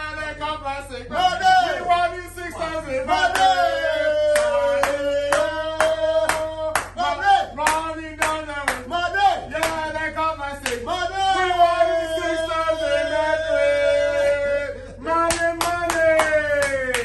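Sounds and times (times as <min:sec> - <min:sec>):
men singing a chant: 0:00.0 - 0:17.0
clapping in time: 0:04.3 - 0:07.0, 0:15.2 - 0:17.0.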